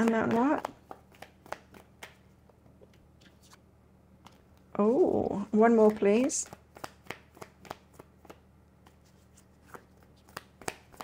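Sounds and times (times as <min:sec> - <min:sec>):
cards being shuffled: 0:00.0 - 0:03.6, 0:04.2 - 0:11.0.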